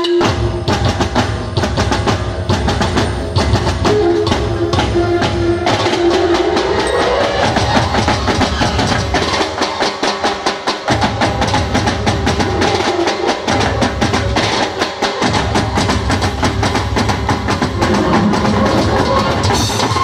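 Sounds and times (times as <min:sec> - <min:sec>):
drums beating fast rhythm: 0:00.0 - 0:20.0
live band playing: 0:00.0 - 0:20.0.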